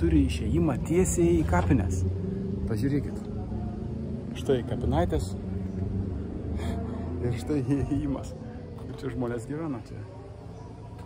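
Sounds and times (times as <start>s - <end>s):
low rumble of motor traffic: 0.0s - 11.0s
man's voice: 6.6s - 10.1s.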